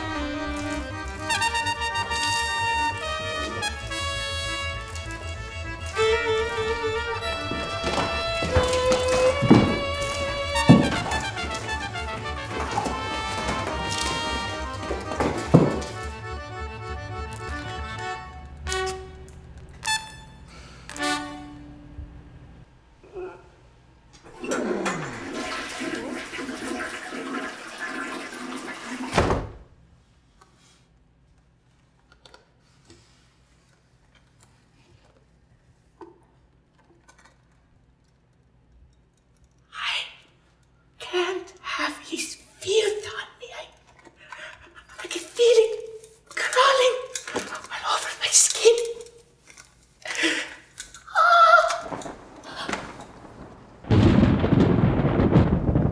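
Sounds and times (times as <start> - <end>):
heavy thud: 6.4 - 16.1, 51.9 - 55.9
loud rush of gurgling water: 24.3 - 29.2.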